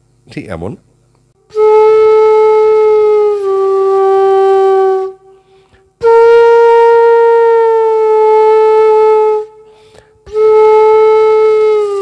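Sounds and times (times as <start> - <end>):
bamboo flute long note: 1.4 - 12.0.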